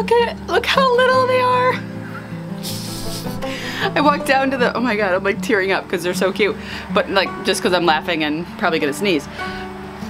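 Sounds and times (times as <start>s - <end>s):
background music: 0.0s - 10.0s
woman's stifled laugh: 2.6s - 4.0s.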